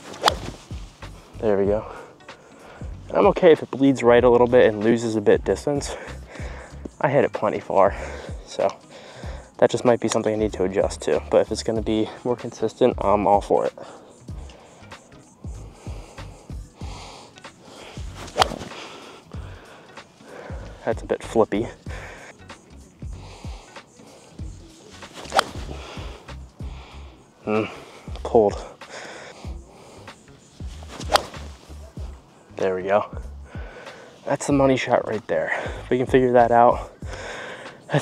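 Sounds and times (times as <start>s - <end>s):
background music with low beat: 0.0s - 38.0s
golf club striking ball: 0.1s - 0.7s, 18.1s - 18.9s, 25.1s - 26.2s, 30.9s - 31.7s.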